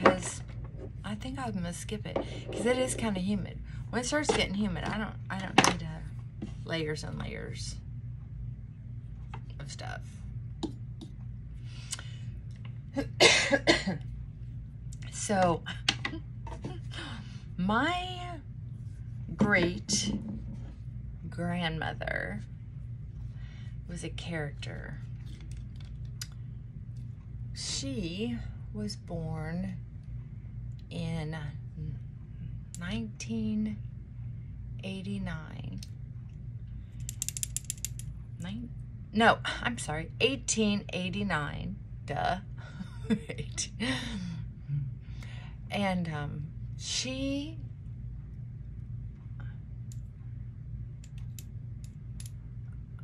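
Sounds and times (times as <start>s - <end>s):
woman coughing: 13.0s - 14.0s
ratcheting clicks: 37.0s - 38.1s.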